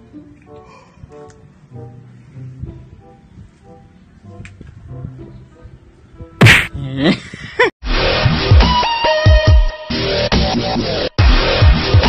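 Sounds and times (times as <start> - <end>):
quiet background music: 0.0 - 7.2
loud sharp smack: 6.4 - 6.8.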